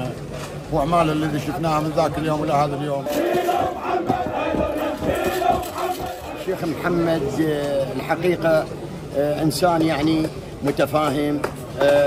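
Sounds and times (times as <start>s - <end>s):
crowd of men chanting: 3.0s - 7.4s.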